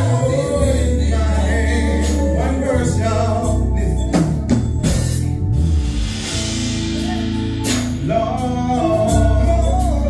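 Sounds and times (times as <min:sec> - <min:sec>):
male group singing gospel: 0:00.0 - 0:05.2, 0:07.0 - 0:10.0.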